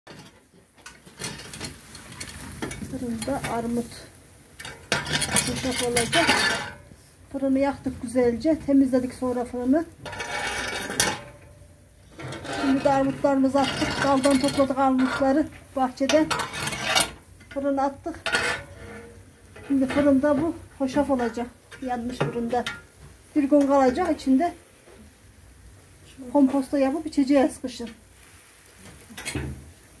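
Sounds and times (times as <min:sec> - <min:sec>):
faint background noise: 0:00.1 - 0:30.0
metal rake scraping brick: 0:04.6 - 0:06.9, 0:10.0 - 0:22.7.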